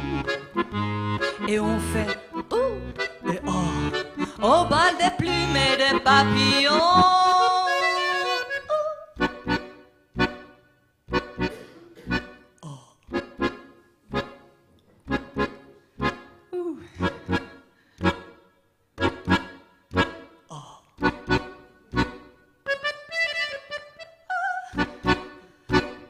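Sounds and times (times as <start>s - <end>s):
accordion playing detached chords: 0.0s - 26.0s.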